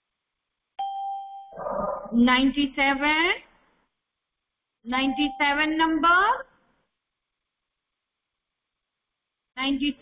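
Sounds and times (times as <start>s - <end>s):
bell ding: 0.8s - 1.6s.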